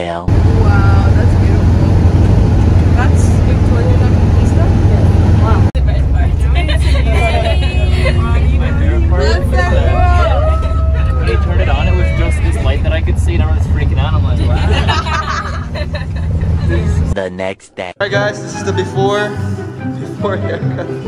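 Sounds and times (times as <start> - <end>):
vehicle low rumble: 0.2 - 17.2
passengers shouting excitedly: 6.4 - 13.6.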